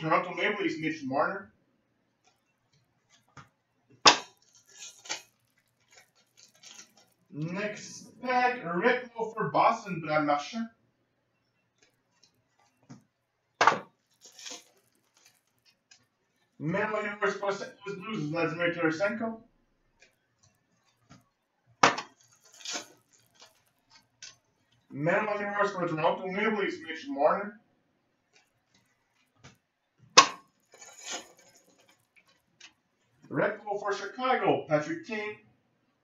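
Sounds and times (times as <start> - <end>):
cards clicking and rustling: 3.1 - 8.2, 11.8 - 16.6, 20.0 - 24.8, 30.2 - 32.8
cards sliding: 4.1 - 8.0, 13.6 - 15.6.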